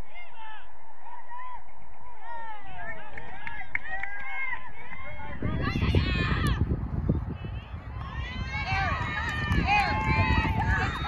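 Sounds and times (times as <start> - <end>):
low microphone rumble: 4.5 - 11.0
high voices shouting: 7.3 - 11.0.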